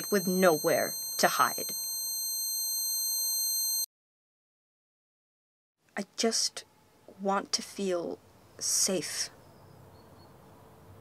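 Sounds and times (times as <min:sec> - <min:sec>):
high-pitched electronic ringing drone: 0:00.0 - 0:03.9.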